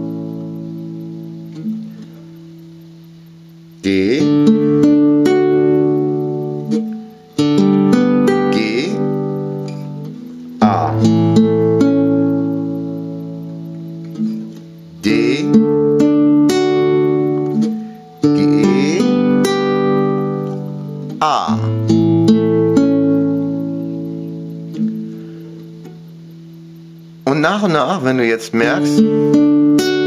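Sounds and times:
classical guitar chords plucked: 0.0 - 30.0.

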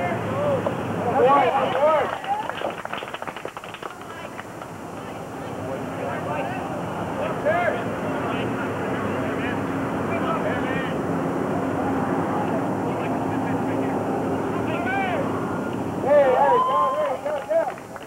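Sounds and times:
distant engine drone: 0.0 - 18.0.

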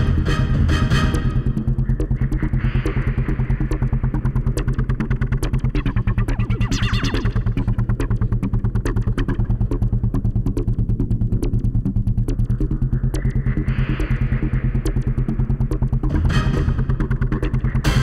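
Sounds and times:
pulsing synthesizer music: 0.0 - 18.0
sustained deep bass: 0.0 - 18.0
bright synth sound: 5.7 - 8.0.

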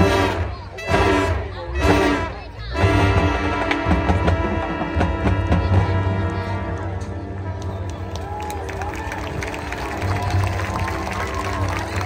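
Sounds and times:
drums beating: 0.0 - 7.2
marching band brass chords: 0.0 - 8.4.

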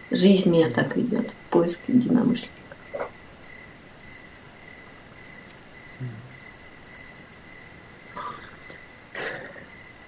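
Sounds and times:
crickets chirring: 0.0 - 10.0.

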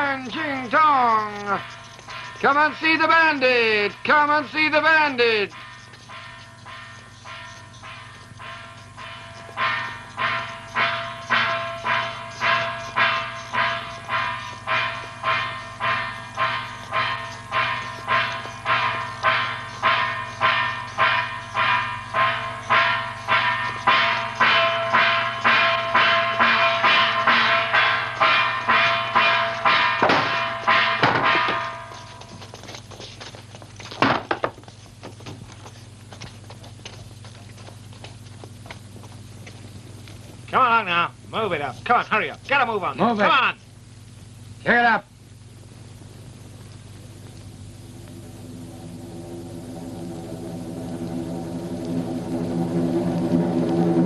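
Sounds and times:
metal percussion ringing strokes: 0.0 - 32.8, 47.6 - 54.0.

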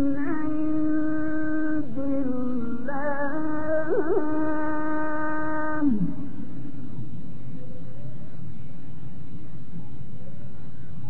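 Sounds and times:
background hiss and murmur: 0.0 - 11.0.

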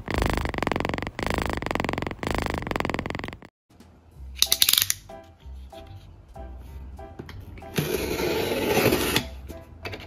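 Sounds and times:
light background music: 3.7 - 10.0.

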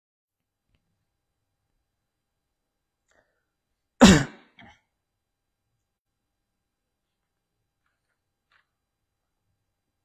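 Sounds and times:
person clearing throat: 4.0 - 4.9.

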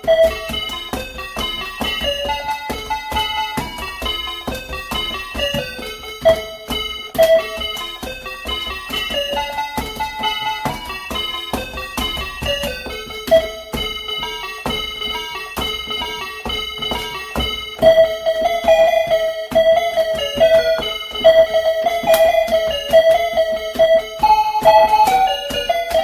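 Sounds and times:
calculator key electronic notes: 0.0 - 26.0.

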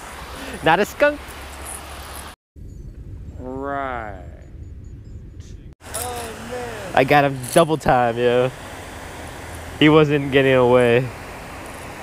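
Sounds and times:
outdoor background noise: 0.0 - 3.5, 4.2 - 12.0
man speaking: 0.4 - 1.2, 3.4 - 4.4, 5.9 - 8.6, 9.8 - 11.1.

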